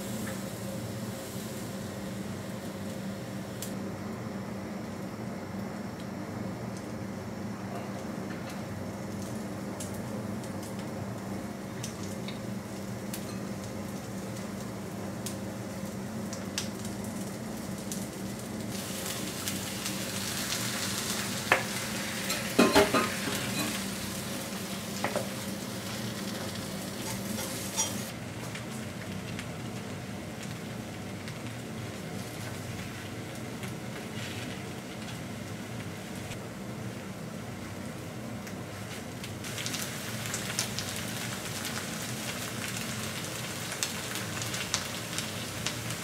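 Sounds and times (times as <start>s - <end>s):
batter sizzling on a hot plate: 0.0s - 5.9s, 8.2s - 46.0s
utensils clicking on a pan: 26.4s - 28.1s.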